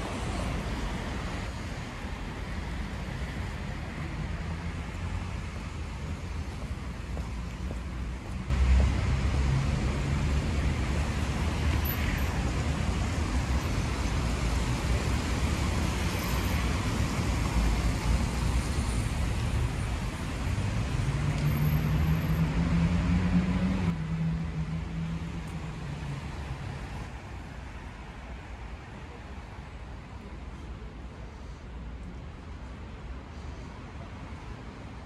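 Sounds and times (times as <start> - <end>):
cars passing on wet road: 0.0 - 30.4.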